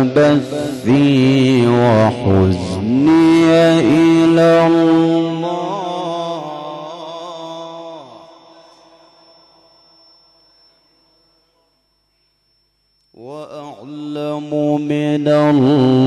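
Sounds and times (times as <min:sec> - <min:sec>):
man reciting melodically: 0:00.0 - 0:10.1, 0:13.2 - 0:16.0.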